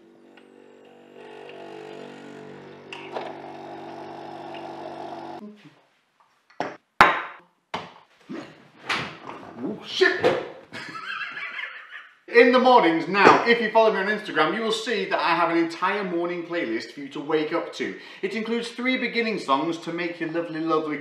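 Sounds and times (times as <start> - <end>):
coffee machine pump humming: 2.9 - 5.4
hissing coffee pour: 3.1 - 5.4.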